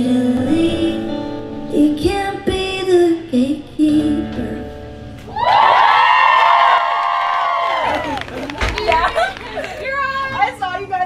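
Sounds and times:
woman singing pop song: 0.0s - 4.9s
band accompaniment with guitar: 0.0s - 7.2s
audience screaming and cheering: 5.2s - 10.0s.

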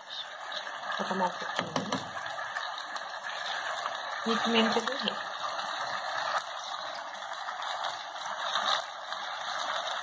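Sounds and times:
chicken sizzling in a frying pan: 0.0s - 10.0s.

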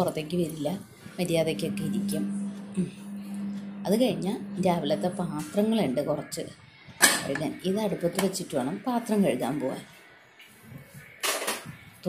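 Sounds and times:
person talking: 0.0s - 6.4s.

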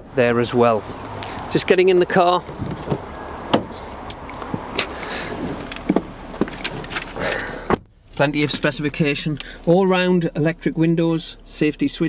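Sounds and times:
outdoor background noise: 0.0s - 12.0s
car door shutting: 2.4s - 9.7s
rustling: 2.4s - 9.7s.

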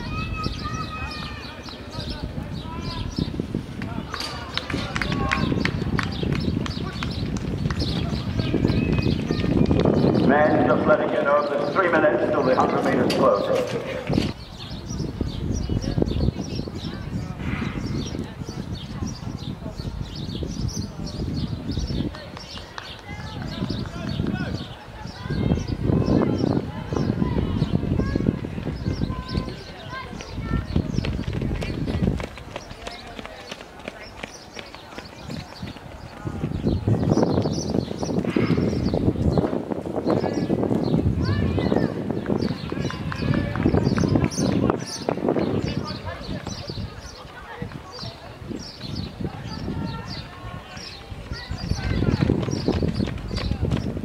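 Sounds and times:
footsteps of runners on a track: 0.7s - 14.5s, 21.8s - 24.8s, 28.1s - 38.0s, 42.1s - 54.0s.

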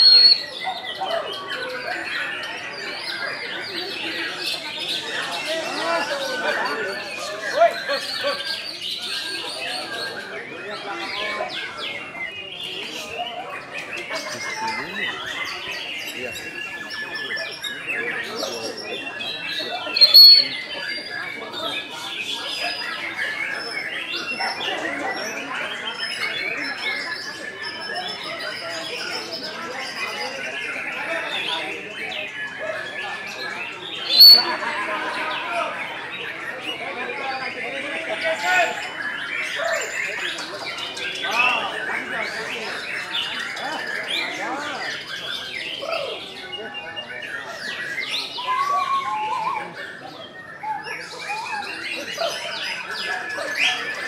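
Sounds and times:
songbird singing whistles and chirps: 0.0s - 0.8s, 19.6s - 21.2s, 34.0s - 34.6s, 47.5s - 52.8s
background chatter: 0.0s - 54.0s
other birds singing: 0.0s - 54.0s.

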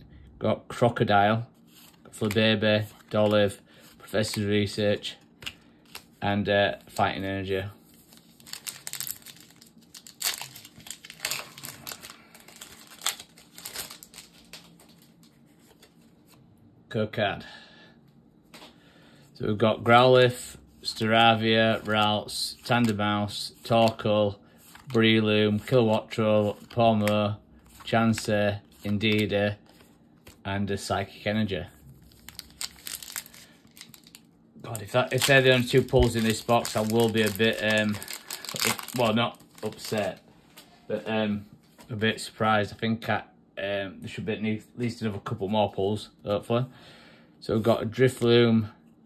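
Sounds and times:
foil wrapper crinkling and tearing: 7.8s - 16.0s, 32.0s - 40.2s.

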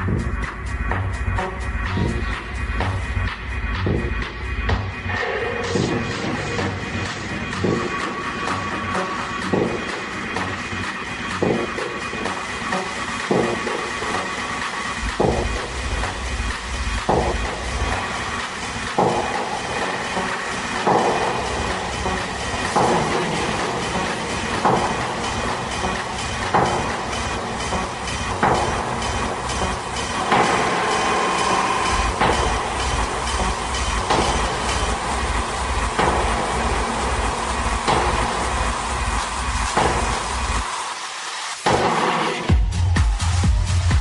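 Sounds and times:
deep kick drum: 0.0s - 8.0s, 15.1s - 19.8s, 20.7s - 40.6s, 42.5s - 44.0s
techno music: 0.0s - 44.0s.

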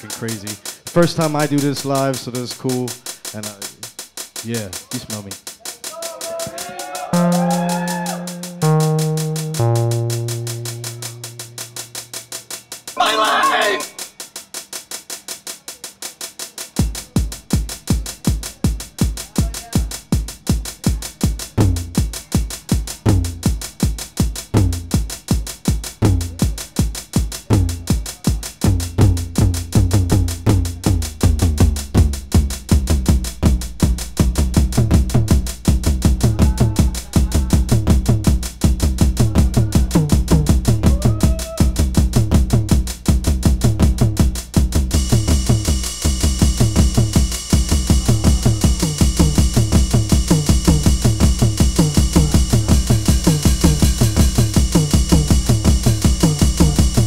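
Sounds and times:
fast drum pattern: 0.0s - 57.0s
deep bass line: 1.0s - 2.2s, 7.2s - 12.2s, 21.5s - 22.0s, 22.9s - 23.6s, 24.4s - 25.1s, 25.9s - 26.6s, 27.4s - 57.0s
held synth notes: 7.1s - 12.0s, 44.9s - 57.0s.

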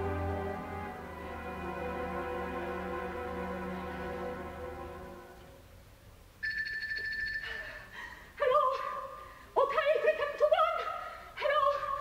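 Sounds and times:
orchestral string chord: 0.0s - 5.6s
telephone ringing: 6.4s - 7.6s.

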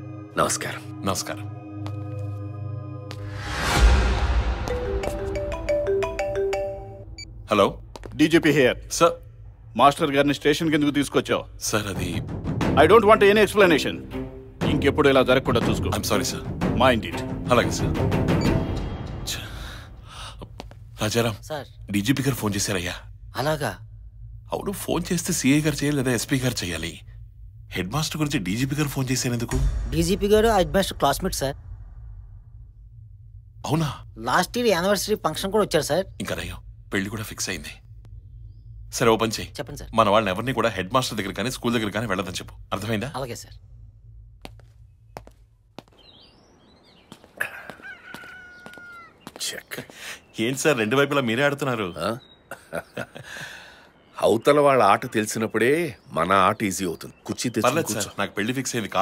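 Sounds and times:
small birds chirping: 44.5s - 59.0s
rooster crowing: 47.4s - 49.4s.

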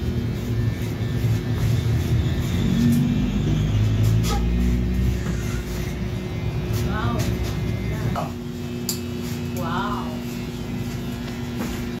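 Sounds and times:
steady machine hum: 0.0s - 12.0s.

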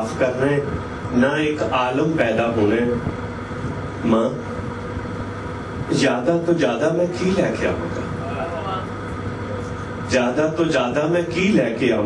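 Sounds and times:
boat engine rumble with hiss: 0.0s - 12.0s.

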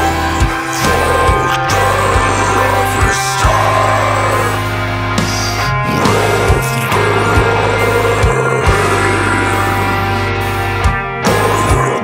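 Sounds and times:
distorted electric guitars: 0.0s - 12.0s.

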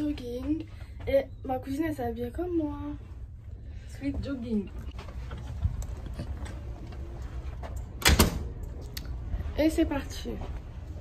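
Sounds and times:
cabin door shutting: 7.9s - 8.5s.

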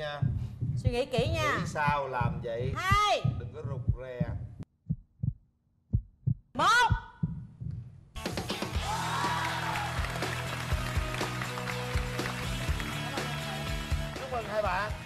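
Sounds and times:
low suspense thump: 0.0s - 8.0s
upbeat game show music: 8.2s - 15.0s.

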